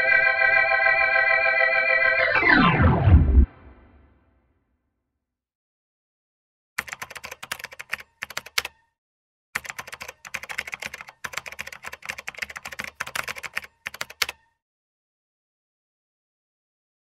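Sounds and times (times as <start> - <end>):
computer keyboard typing: 6.8 - 8.8, 9.6 - 14.5.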